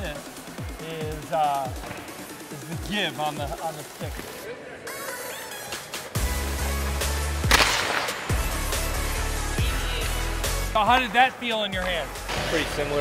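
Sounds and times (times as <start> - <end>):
hockey slap shot crack: 7.3 - 8.8.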